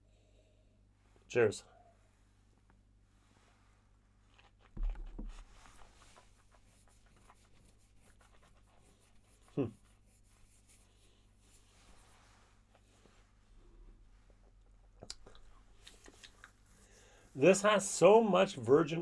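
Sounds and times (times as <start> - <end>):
mouth clicks and lip smacks: 15.0 - 16.6.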